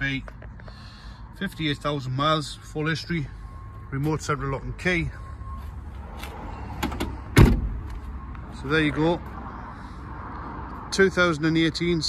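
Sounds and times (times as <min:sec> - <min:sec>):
van door slamming: 0:06.8 - 0:07.9.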